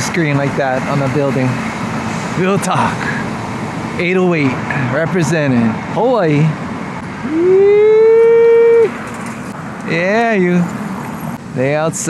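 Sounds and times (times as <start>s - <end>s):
person shouting: 7.2s - 9.0s.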